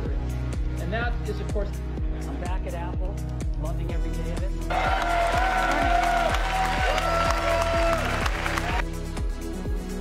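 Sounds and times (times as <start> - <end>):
audience applause: 4.7 - 8.8.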